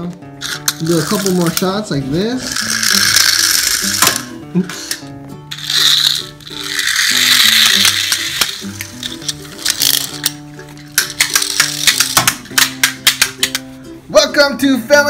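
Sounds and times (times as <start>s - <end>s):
toy car wind-up motor whirr: 0.4s - 1.6s, 2.4s - 4.3s, 5.5s - 10.3s
toy car rattling clicks: 0.4s - 1.7s, 2.4s - 4.3s, 5.5s - 13.6s.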